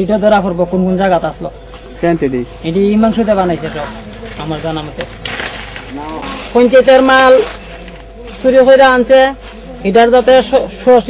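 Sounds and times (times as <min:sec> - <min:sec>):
man speaking: 0:00.0 - 0:05.2.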